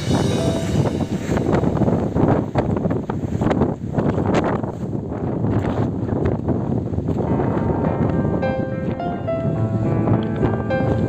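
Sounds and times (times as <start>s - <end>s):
faint music: 0.0s - 2.2s, 7.3s - 11.0s
sea surf breaking: 0.0s - 5.0s
wind buffeting microphone: 0.0s - 11.0s.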